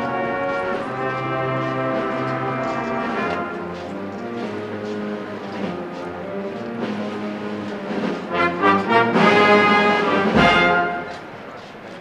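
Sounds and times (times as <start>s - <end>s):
brass band playing a march: 0.0s - 11.4s.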